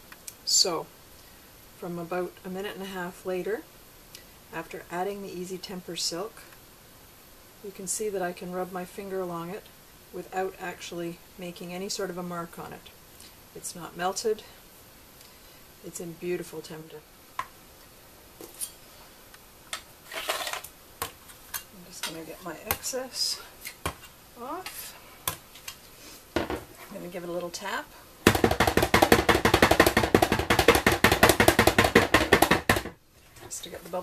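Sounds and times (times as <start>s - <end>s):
mould tapping on work surface: 28.2s - 33.0s.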